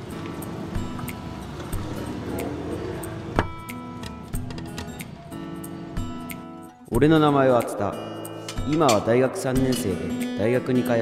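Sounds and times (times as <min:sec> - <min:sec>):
street traffic rumble: 0:00.0 - 0:06.6
background music: 0:00.0 - 0:11.0.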